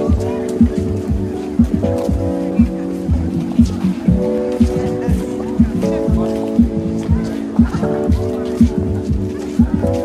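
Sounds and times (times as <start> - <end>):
kick drum beat: 0.0 - 9.9.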